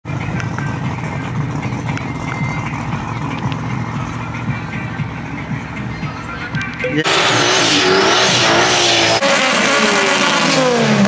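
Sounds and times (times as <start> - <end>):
low rumble of car engines: 0.0 - 11.0
faint voices: 0.1 - 7.1.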